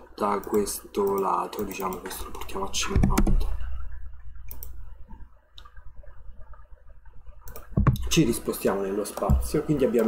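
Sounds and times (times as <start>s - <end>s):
computer mouse and keyboard clicks: 0.4s - 3.5s, 7.4s - 8.1s.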